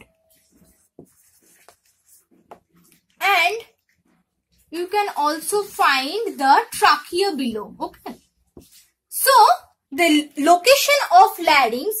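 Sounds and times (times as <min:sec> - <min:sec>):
marker rubbing on whiteboard: 0:00.3 - 0:04.2, 0:07.2 - 0:09.0.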